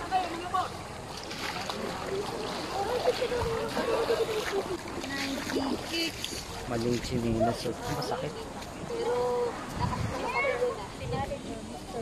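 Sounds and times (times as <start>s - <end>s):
shallow sea water: 0.0s - 12.0s.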